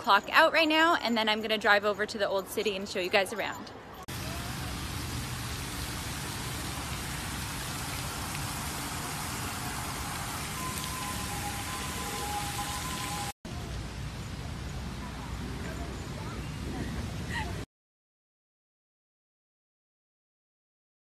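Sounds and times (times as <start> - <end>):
water splashing from fountain: 4.1 - 17.6
faint thin whistle-like tone: 10.6 - 13.3.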